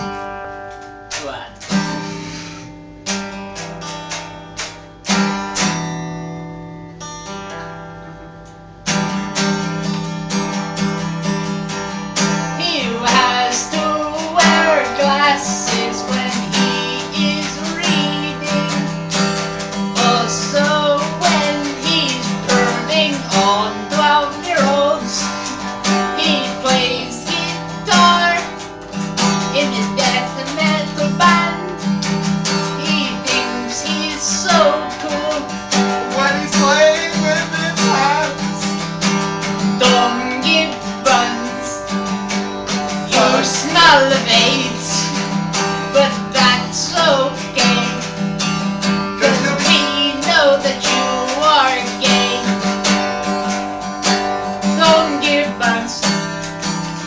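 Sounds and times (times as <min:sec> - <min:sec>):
acoustic guitar strumming: 0:00.0 - 0:57.0
lead guitar melody: 0:00.0 - 0:57.0.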